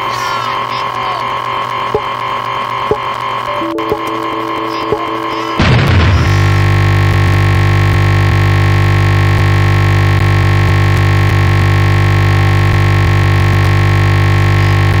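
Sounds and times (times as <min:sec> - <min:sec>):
loud stuck audio buzz: 0:02.9 - 0:15.0.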